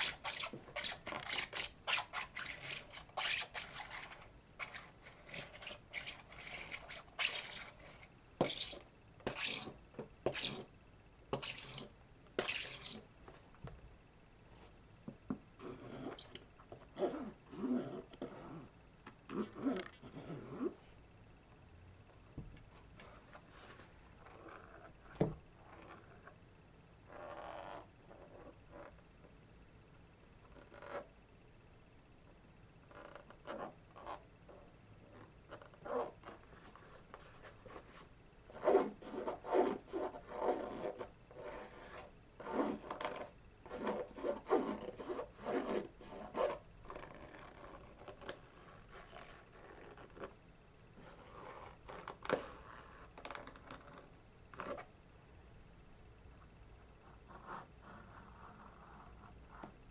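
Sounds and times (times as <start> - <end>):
rubber soles squeaking: 0.0 - 10.6, 38.6 - 50.3
fingers scratching canvas sneaker: 0.0 - 10.7, 11.3 - 13.0, 35.1 - 50.3.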